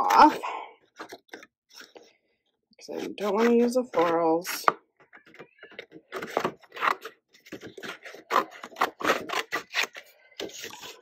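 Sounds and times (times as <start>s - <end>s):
scissors cutting paper: 3.0s - 11.0s.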